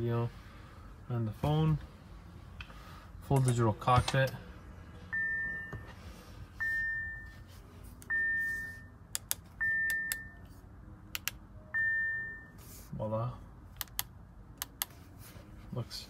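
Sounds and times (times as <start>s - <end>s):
car warning chime: 5.0s - 7.4s, 8.1s - 9.0s, 9.6s - 10.5s, 11.6s - 12.6s
sharp clicks: 13.8s - 14.9s.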